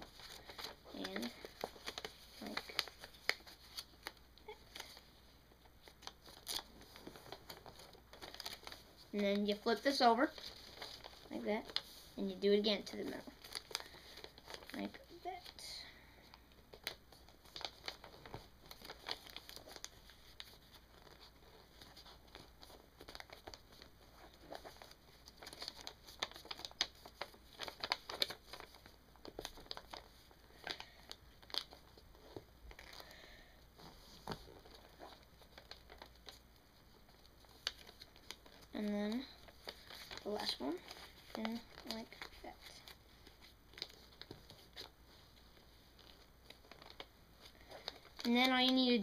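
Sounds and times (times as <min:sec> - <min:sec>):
paper crinkling as folded: 0:00.0 - 0:49.0.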